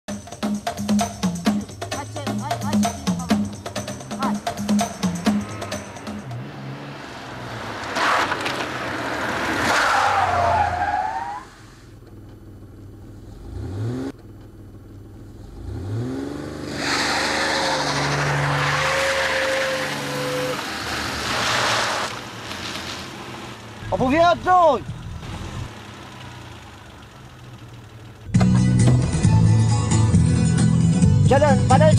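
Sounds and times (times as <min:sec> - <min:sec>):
car engine revving: 0:00.7 - 0:31.9
tyres squealing: 0:03.3 - 0:11.8, 0:16.8 - 0:23.2.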